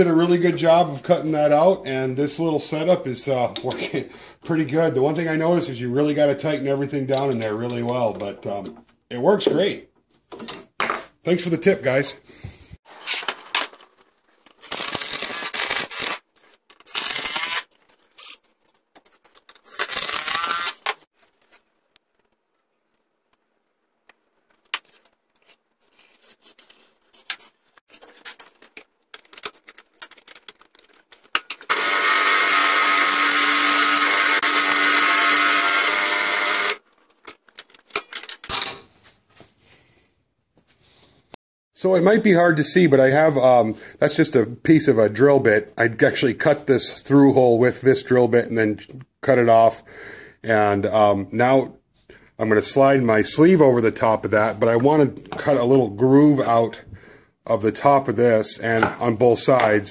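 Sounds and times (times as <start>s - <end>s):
power tool motor buzzing: 19.9s - 21.0s, 31.7s - 36.8s
clicks and knocks of handling: 28.0s - 31.7s, 36.9s - 38.9s.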